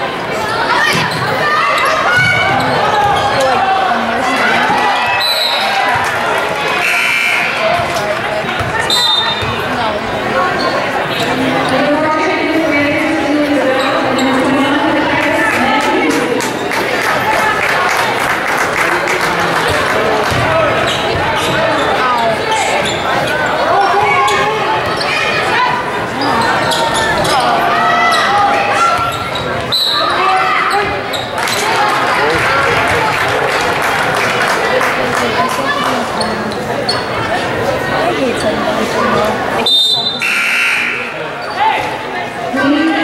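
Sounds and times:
indistinct voices: 0:00.0 - 0:43.0.

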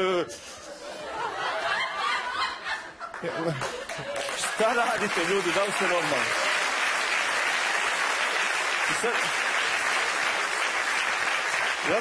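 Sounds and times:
studio audience laughing: 0:00.6 - 0:05.8.

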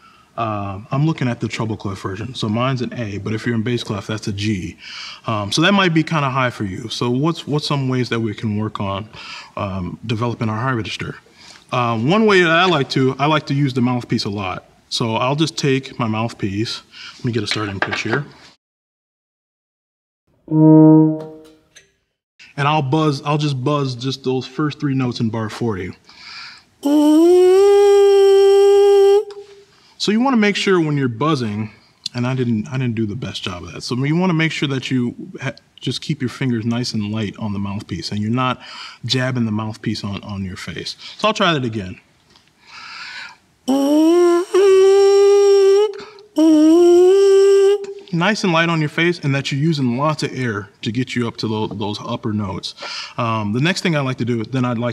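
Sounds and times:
euphonium held note: 0:20.5 - 0:21.6
person breathing in: 0:26.1 - 0:27.0, 0:42.6 - 0:44.7, 0:52.8 - 0:53.2.

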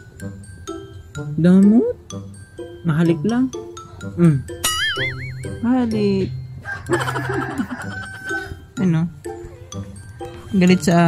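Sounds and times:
background music: 0:00.0 - 0:11.0
rooster crowing: 0:06.6 - 0:08.6.

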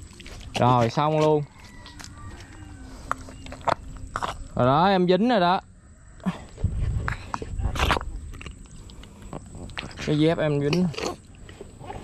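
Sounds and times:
sandal squelching in mud: 0:00.0 - 0:04.5.

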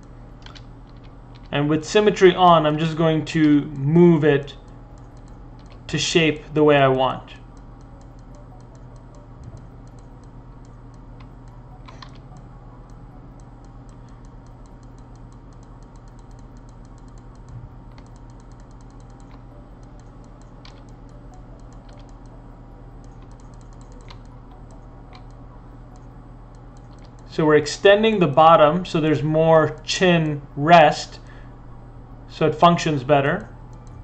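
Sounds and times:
keyboard keys clicking: 0:00.0 - 0:01.6, 0:04.6 - 0:05.9, 0:07.5 - 0:27.4
steady low hum: 0:00.0 - 0:34.0.

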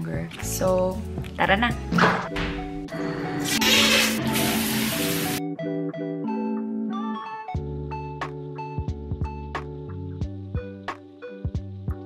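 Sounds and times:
background music: 0:00.0 - 0:12.0
shower water spraying: 0:03.5 - 0:05.4.

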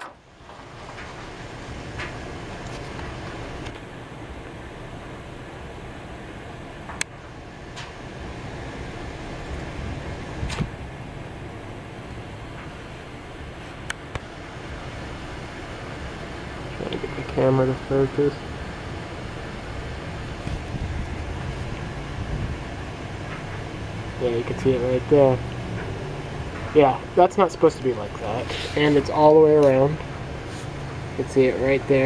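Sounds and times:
steady background hum and hiss: 0:00.0 - 0:32.0.

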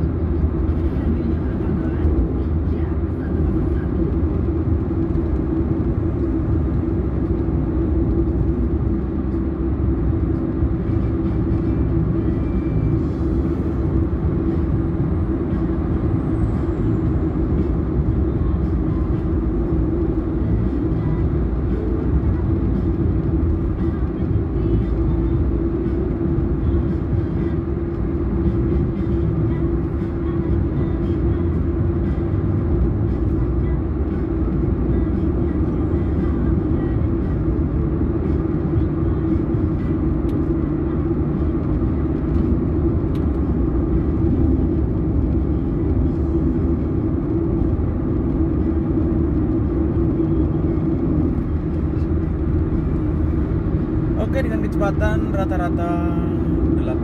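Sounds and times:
car cabin road and engine noise: 0:00.0 - 0:57.0.

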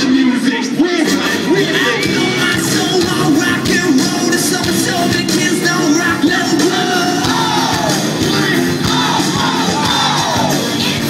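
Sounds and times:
crowd yelling along: 0:00.0 - 0:11.0
loud live band: 0:00.0 - 0:11.0
lead vocal singing: 0:00.4 - 0:11.0.

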